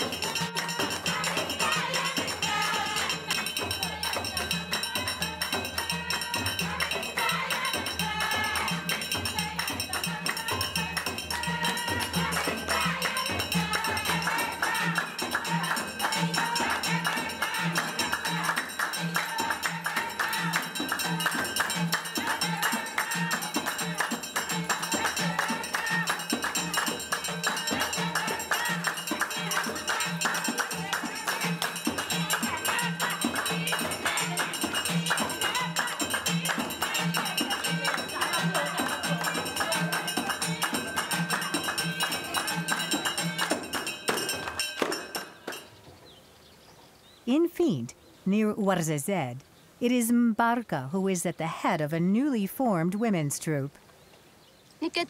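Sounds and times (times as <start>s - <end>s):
frame drums beating: 0.0s - 45.7s
hand clapping: 0.0s - 45.7s.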